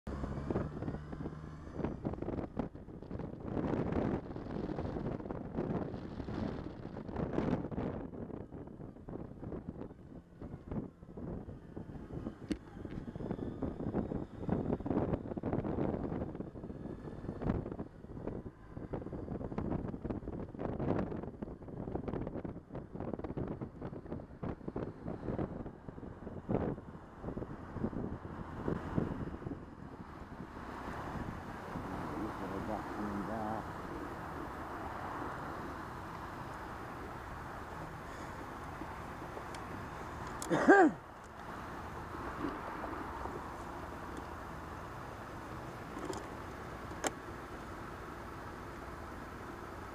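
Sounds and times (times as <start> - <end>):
road noise: 0.0 - 49.9
wind buffeting microphone: 0.1 - 49.9.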